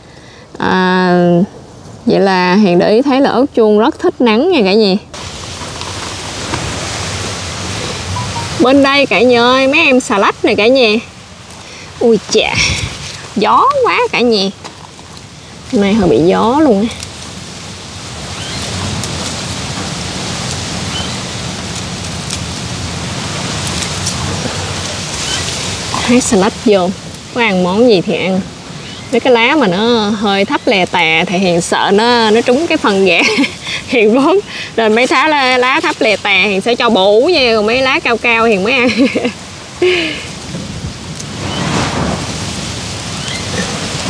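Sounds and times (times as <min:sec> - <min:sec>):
wind blowing across microphone: 0:00.5 - 0:44.0
strong wind on microphone: 0:12.4 - 0:14.4, 0:40.2 - 0:44.0.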